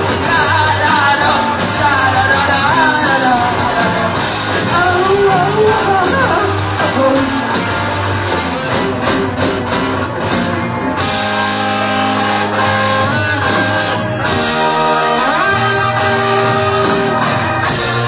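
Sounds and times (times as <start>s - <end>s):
drums striking: 0.0s - 18.0s
rock band playing: 0.0s - 18.0s.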